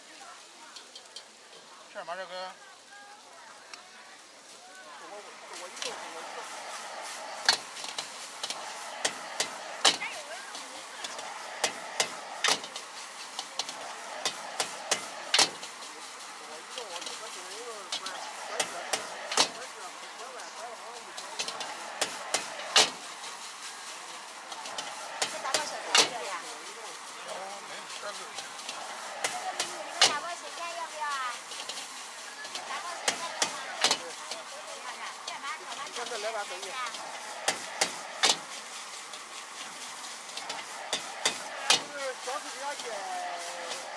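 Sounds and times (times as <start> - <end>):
food sizzling: 0.0 - 43.9
gas burner hissing: 0.0 - 43.9
metal ladle clanking against wok: 40.3 - 41.9.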